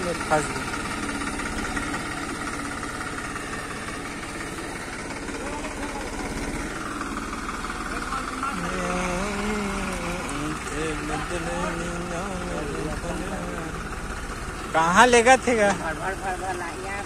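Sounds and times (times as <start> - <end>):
tractor diesel engine running: 0.0 - 17.0
voices: 0.0 - 17.0.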